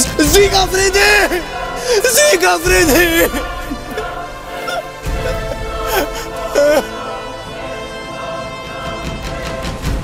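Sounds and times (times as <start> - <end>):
dramatic background music: 0.0 - 10.0
boy crying out: 2.9 - 7.0.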